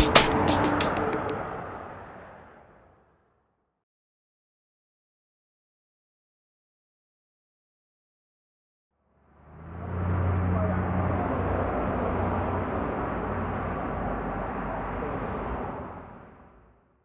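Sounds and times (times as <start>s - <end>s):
vehicle engine hum: 0.0s - 3.4s, 9.0s - 17.0s.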